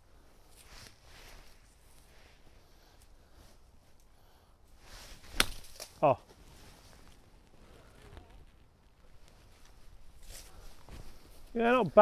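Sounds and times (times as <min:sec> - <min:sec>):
faint rustling: 0:04.7 - 0:12.0.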